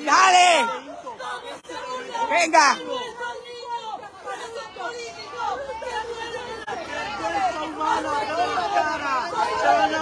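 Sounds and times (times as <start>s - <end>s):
people talking and shouting: 0.0s - 10.0s.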